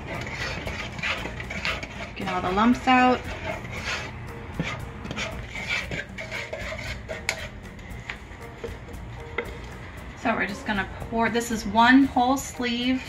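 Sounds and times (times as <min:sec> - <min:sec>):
wooden spoon scraping metal saucepan: 0:00.0 - 0:09.6, 0:11.5 - 0:13.0
faint background music: 0:00.0 - 0:13.0.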